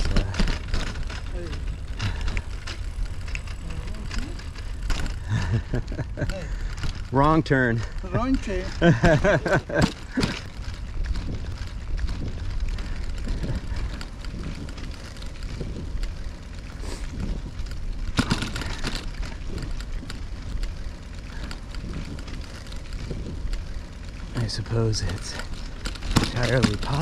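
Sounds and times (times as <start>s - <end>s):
bicycle tyres on road: 0.0s - 27.0s.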